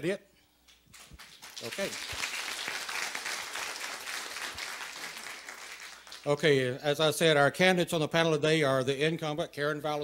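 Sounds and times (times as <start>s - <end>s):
audience applauding: 0.9s - 6.5s.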